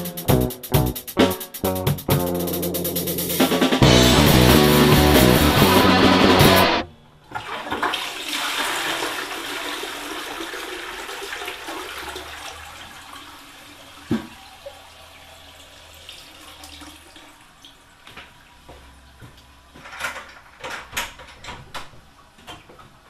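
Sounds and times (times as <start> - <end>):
rock band music: 0.0 - 6.8
toilet flushing: 3.8 - 18.7.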